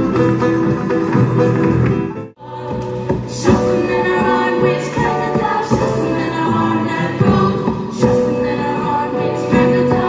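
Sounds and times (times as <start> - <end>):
choir singing in parts: 2.4 - 10.0.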